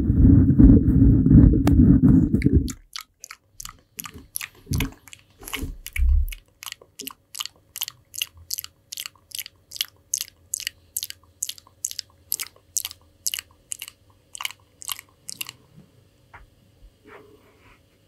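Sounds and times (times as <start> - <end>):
wet mouth clicks and smacks: 2.4 - 15.6.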